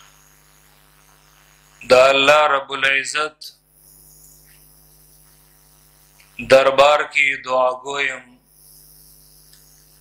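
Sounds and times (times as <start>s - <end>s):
electrical mains hum: 0.0s - 10.0s
light hiss: 3.7s - 6.4s, 8.4s - 10.0s.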